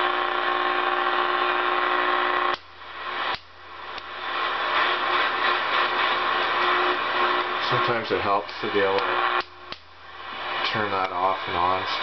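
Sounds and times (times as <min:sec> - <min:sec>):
radio static: 0:00.0 - 0:12.0.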